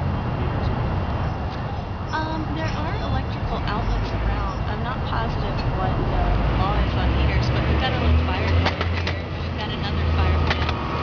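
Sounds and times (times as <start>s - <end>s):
indistinct voices: 0.0s - 11.0s
low engine rumble: 0.0s - 11.0s.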